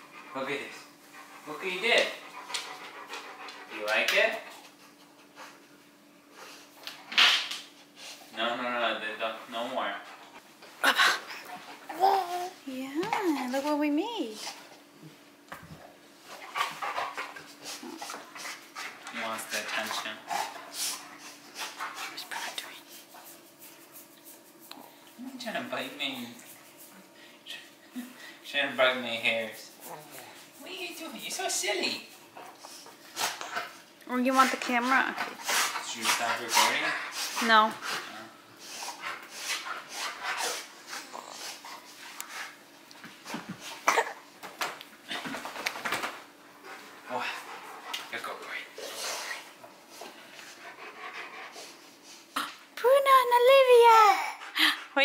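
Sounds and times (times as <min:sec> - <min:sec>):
dog panting: 0:00.0 - 0:06.8, 0:15.7 - 0:28.4, 0:29.0 - 0:43.8, 0:46.6 - 0:52.4
dog breathy sounds: 0:34.9 - 0:42.6.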